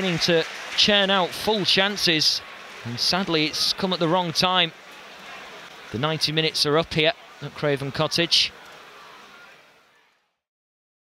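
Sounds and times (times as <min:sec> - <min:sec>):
stadium crowd noise: 0:00.0 - 0:10.5.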